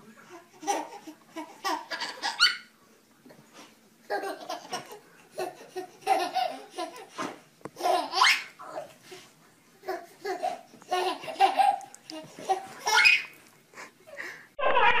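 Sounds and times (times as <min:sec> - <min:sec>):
baby laughing: 0:00.3 - 0:02.7, 0:04.0 - 0:09.0, 0:09.8 - 0:13.4.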